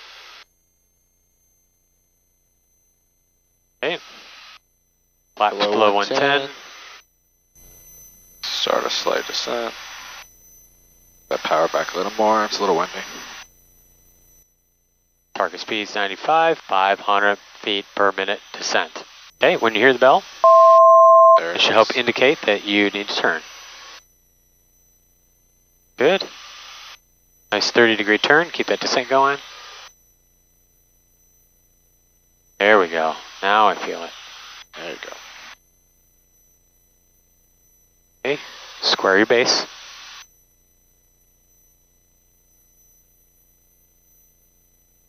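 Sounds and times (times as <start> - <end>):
intercom hiss: 3.8 - 4.5, 5.4 - 7.0, 8.4 - 10.2, 11.3 - 13.4, 15.4 - 24.0, 26.0 - 26.8, 27.5 - 29.9, 32.6 - 35.6, 38.3 - 40.2
voice over intercom: 5.4 - 6.2
faint electronic tones: 16.8 - 23.5
thin high electronic tones: 20.4 - 21.7.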